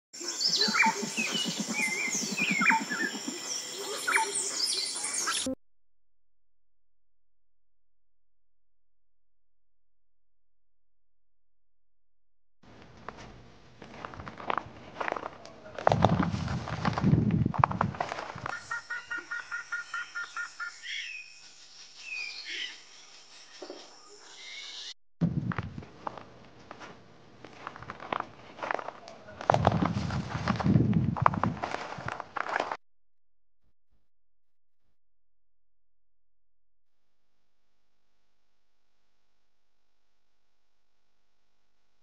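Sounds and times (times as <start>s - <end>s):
birds chirping and calling: 0.2s - 5.5s, 18.5s - 24.9s
sharp downward-sweeping bird calls: 0.2s - 5.5s, 18.5s - 21.5s
footstep on gravel: 12.8s - 18.5s, 25.6s - 32.8s.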